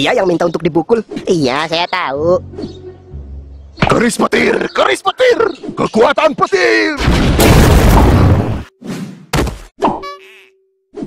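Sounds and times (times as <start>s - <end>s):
cartoon thunder crash: 7.0s - 8.6s.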